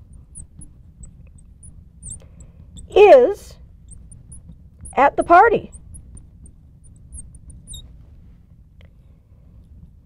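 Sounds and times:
marker squeaking on glass: 0:00.0 - 0:03.0, 0:03.8 - 0:08.0
low room hum: 0:00.0 - 0:10.0.

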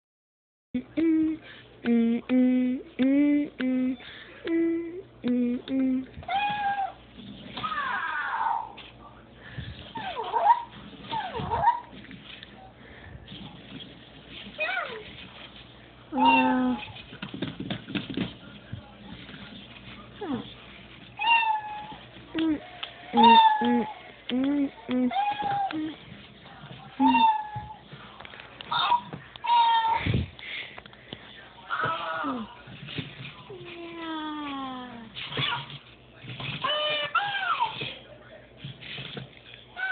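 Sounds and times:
person humming: 0:00.8 - 0:06.2, 0:22.4 - 0:22.6, 0:23.2 - 0:26.0.

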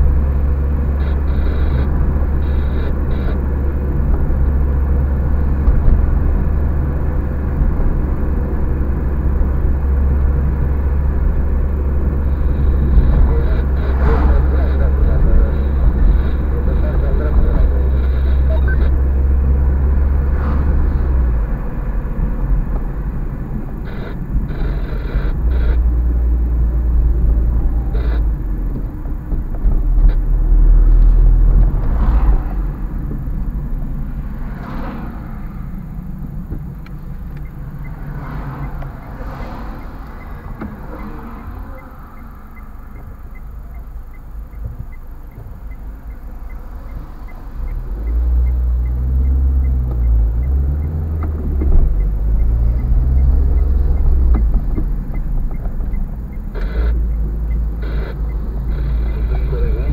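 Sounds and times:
car engine and tyre rumble: 0:00.0 - 0:59.9
car knocking over bumps: 0:50.8 - 0:56.4.

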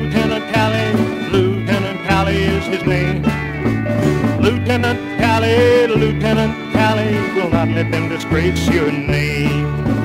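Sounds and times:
country music with guitar and band: 0:00.0 - 0:10.0.

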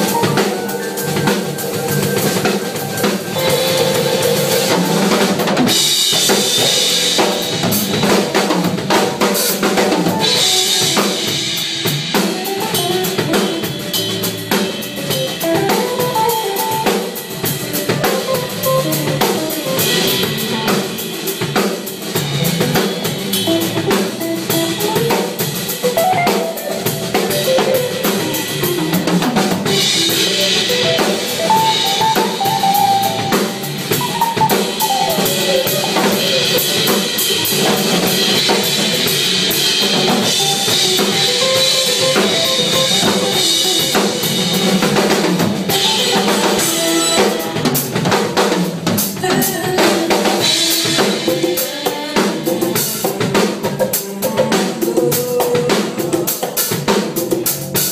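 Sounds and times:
drum kit groove: 0:00.0 - 0:57.9.

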